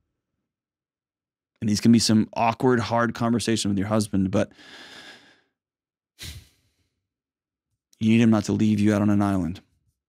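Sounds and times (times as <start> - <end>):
man breathing into microphone: 4.5 - 5.5, 6.2 - 6.8.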